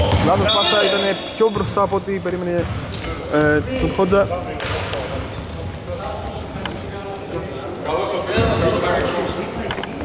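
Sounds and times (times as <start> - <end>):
shoe squeal: 0.0 - 1.8, 5.2 - 7.8
voices in echoing hall: 0.0 - 10.0
basketball bouncing on wooden floor: 1.6 - 2.8.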